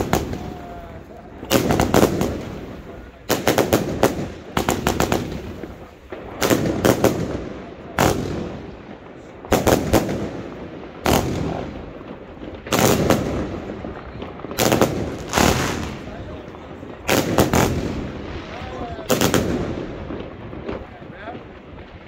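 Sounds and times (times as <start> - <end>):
firework bangs with echo: 0.0 - 22.0.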